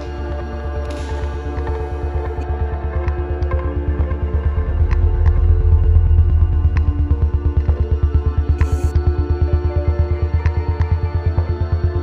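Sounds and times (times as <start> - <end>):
sustained tones: 3.7 - 9.0
throbbing low bass pulse: 4.3 - 9.0.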